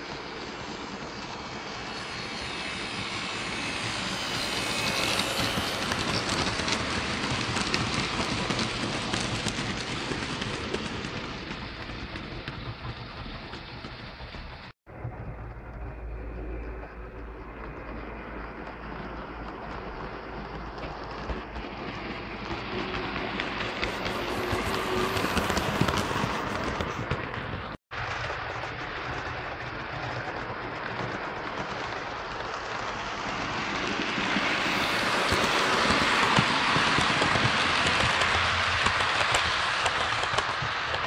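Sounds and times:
model train rumbling on track: 0:00.0 - 0:41.0.

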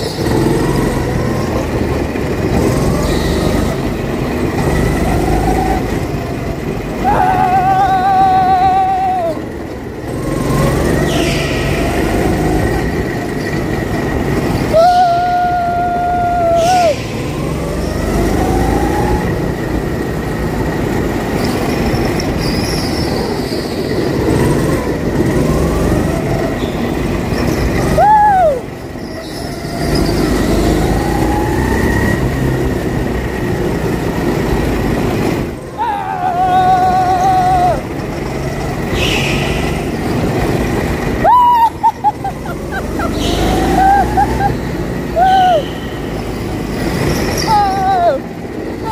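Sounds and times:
go-kart engine under throttle: 0:00.0 - 0:48.9
kart tyres squealing: 0:00.0 - 0:48.9.

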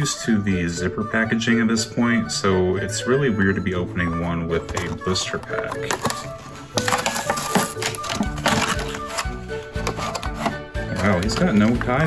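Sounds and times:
background music: 0:00.0 - 0:12.0
plastic packaging crackling: 0:04.8 - 0:11.5.

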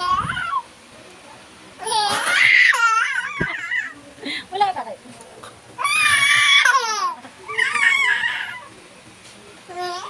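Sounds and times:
baby squealing and laughing: 0:05.8 - 0:08.7.

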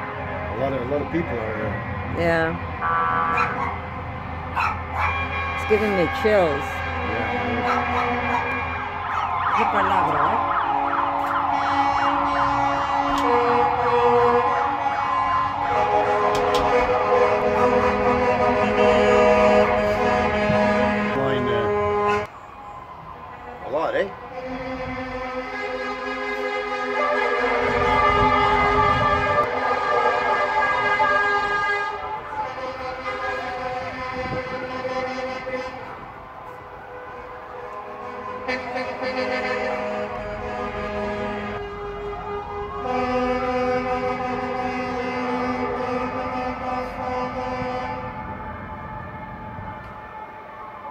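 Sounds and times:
long horn blasts: 0:00.0 - 0:22.3, 0:23.4 - 0:49.6
sirens: 0:00.0 - 0:50.9.

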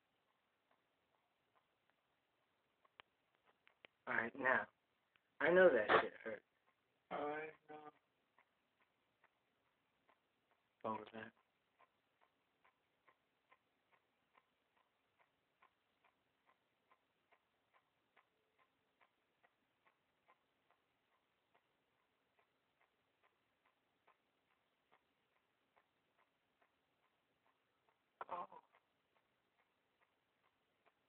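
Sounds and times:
faint even ticking: 0:00.0 - 0:31.0.

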